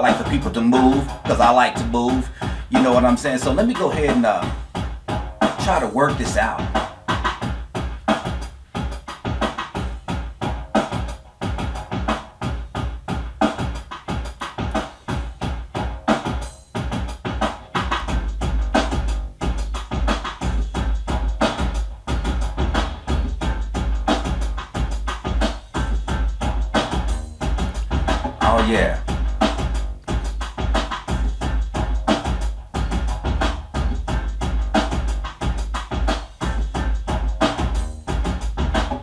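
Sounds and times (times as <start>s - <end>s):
drum machine beat: 0.0s - 39.0s.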